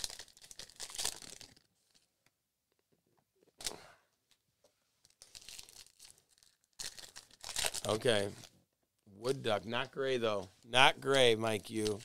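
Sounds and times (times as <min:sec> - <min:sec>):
wrapper crinkling and tearing: 0:00.0 - 0:02.1, 0:05.0 - 0:08.5, 0:11.6 - 0:12.0.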